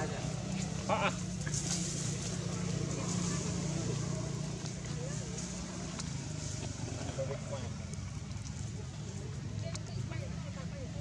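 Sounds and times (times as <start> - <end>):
faint distant voices: 0.0 - 11.0
low engine hum: 0.0 - 11.0.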